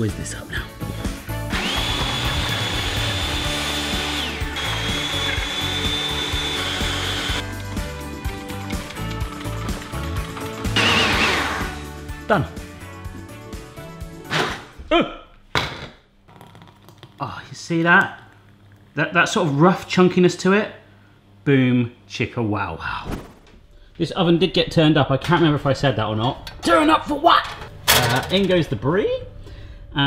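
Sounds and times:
music: 0:00.0 - 0:14.9
blender motor whirring: 0:01.5 - 0:07.5, 0:10.7 - 0:11.8.

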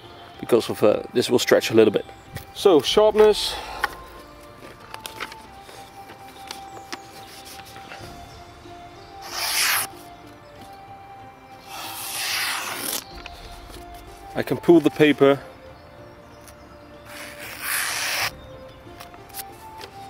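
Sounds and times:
background music held notes: 0:00.0 - 0:20.0
paper rustling: 0:03.8 - 0:08.2, 0:09.2 - 0:10.8, 0:11.7 - 0:15.0, 0:17.1 - 0:18.3.

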